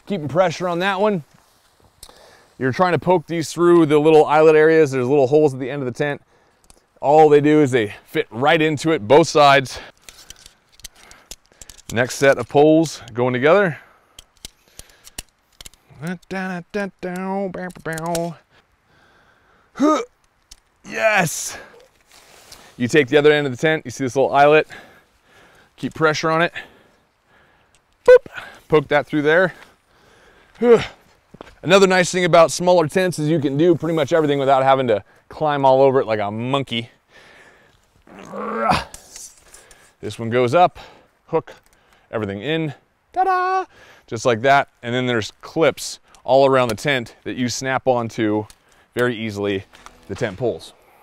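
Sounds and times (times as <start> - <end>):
tent poles clicking together: 9.9 - 13.2, 14.1 - 18.6, 20.1 - 20.8, 27.6 - 28.3, 37.8 - 40.0, 48.1 - 50.6
man grunting with effort: 19.8 - 20.1, 38.1 - 39.0
faint clicks: 27.6 - 28.1.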